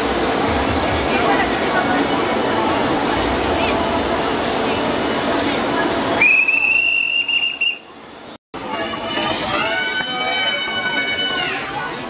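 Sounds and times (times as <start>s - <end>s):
high-pitched whistle tone: 6.2s - 7.9s.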